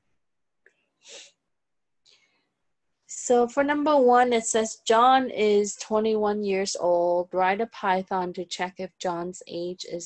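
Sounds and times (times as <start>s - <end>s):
soft breath: 2.0s - 2.6s.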